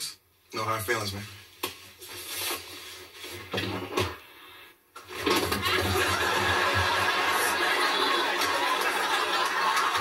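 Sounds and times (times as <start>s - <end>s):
studio audience laughing: 5.6s - 10.0s.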